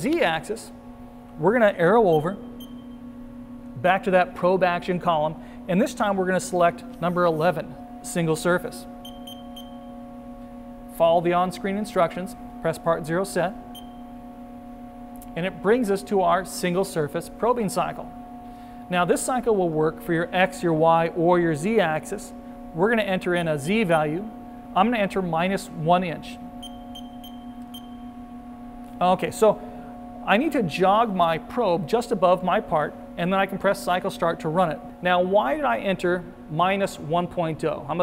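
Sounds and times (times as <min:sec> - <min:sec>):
steady hum: 0:00.0 - 0:38.0
control panel short high beeps: 0:02.1 - 0:03.0, 0:09.0 - 0:09.9, 0:13.8 - 0:14.0, 0:26.6 - 0:28.0.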